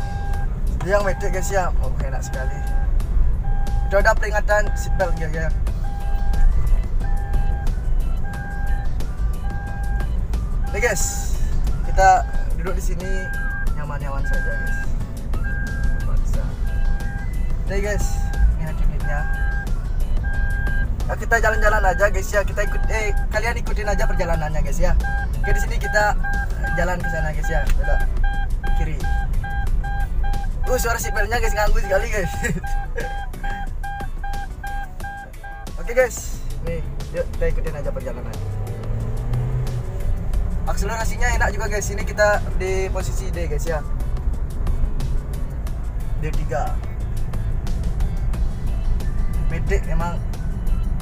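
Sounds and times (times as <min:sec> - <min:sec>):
seatbelt warning chime beeping: 0:00.0 - 0:36.2
engine and road noise: 0:00.0 - 0:51.0.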